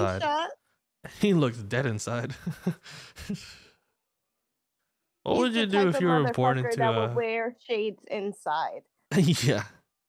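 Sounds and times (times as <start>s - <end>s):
man's breathy sigh-like laugh: 2.4s - 3.8s.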